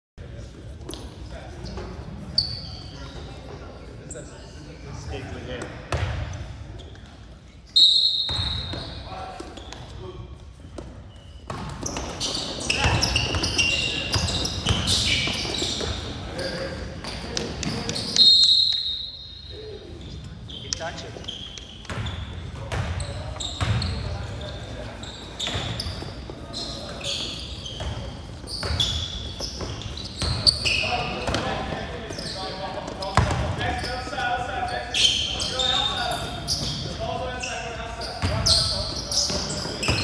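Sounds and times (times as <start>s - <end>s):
ball bouncing on court: 5.6s - 7.2s, 10.8s - 16.1s, 21.8s - 24.2s, 27.7s - 32.2s, 32.9s - 33.7s
referee's whistle blasts: 7.8s - 9.0s, 18.2s - 19.6s
voices shouting and talking: 12.2s - 40.0s.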